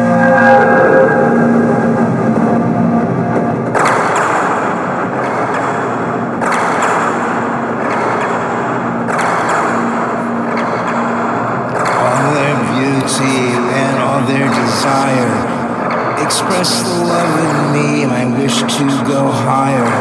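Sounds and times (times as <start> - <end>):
rushing noise swell: 0.0 - 3.7
synth pad: 0.0 - 20.0.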